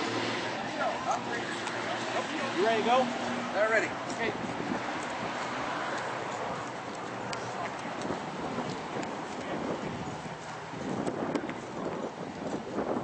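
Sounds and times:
footsteps on pavement: 0:00.1 - 0:13.0.

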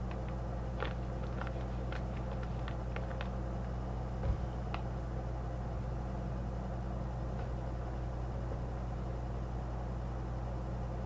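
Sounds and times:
steady electrical hum: 0:00.0 - 0:11.0
foil pouch crackling: 0:00.8 - 0:03.3.

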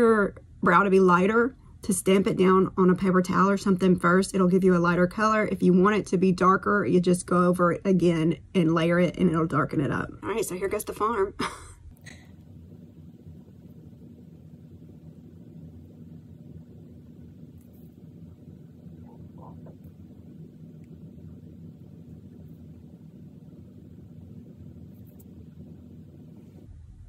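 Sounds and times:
faint low background hum: 0:00.0 - 0:27.0
faint soft sounds: 0:11.8 - 0:27.0.

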